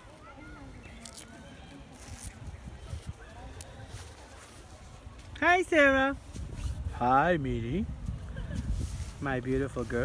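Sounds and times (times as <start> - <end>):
faint child's voice: 0.0 - 2.0
rustling of plastic bags: 0.0 - 7.0.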